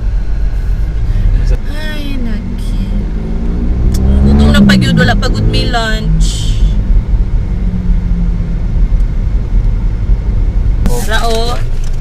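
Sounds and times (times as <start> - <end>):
car rumble from inside cabin: 0.0 - 12.0.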